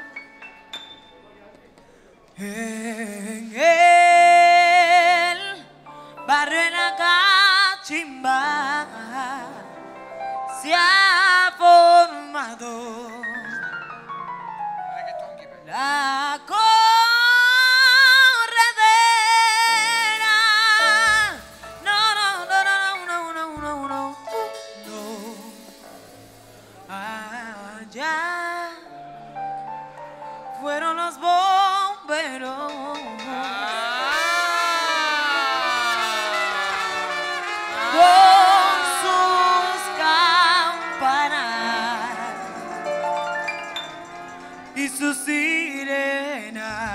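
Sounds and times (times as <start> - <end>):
woman singing into a microphone: 2.4 - 13.6, 15.7 - 25.7, 26.9 - 29.0, 30.5 - 42.9, 43.9 - 46.9
band accompaniment: 18.9 - 27.8, 32.6 - 46.9
long held sliding notes: 19.6 - 27.7, 32.8 - 46.6.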